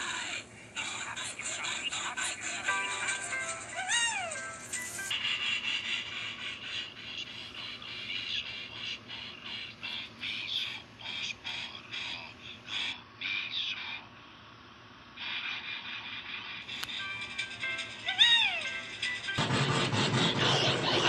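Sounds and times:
orchestral music: 0:02.7 - 0:05.1
steam engine chugging: 0:15.7 - 0:21.0.

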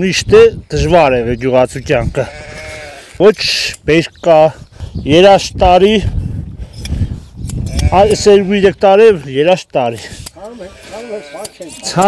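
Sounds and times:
sheep bleating: 0:02.0 - 0:03.2, 0:07.6 - 0:08.8, 0:10.4 - 0:12.0.

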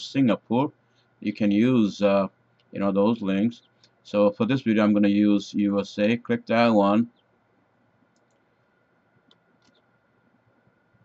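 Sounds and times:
faint high hum: 0:00.0 - 0:11.0
computer mouse clicks: 0:08.1 - 0:08.5, 0:09.2 - 0:09.8.

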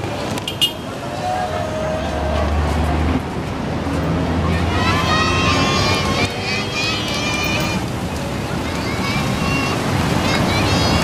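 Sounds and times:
road traffic rumble: 0:00.0 - 0:11.0
high-pitched voices calling out: 0:04.5 - 0:11.0.

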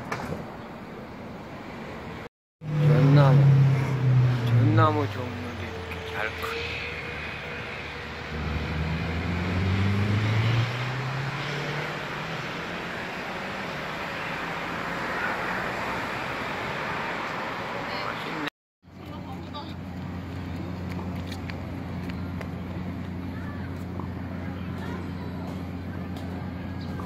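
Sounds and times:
traffic noise: 0:00.0 - 0:27.0
vehicle engine droning: 0:02.6 - 0:27.0.

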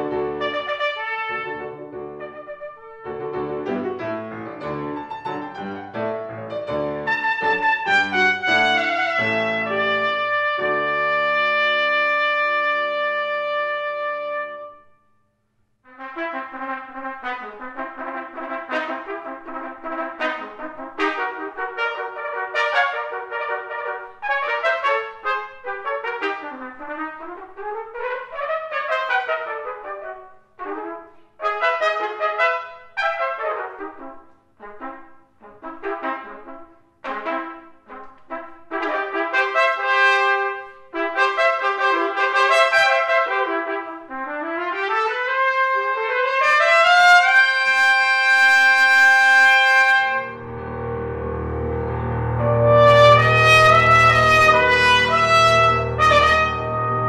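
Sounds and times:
trumpet duet: 0:00.0 - 0:15.0, 0:15.9 - 0:57.0.

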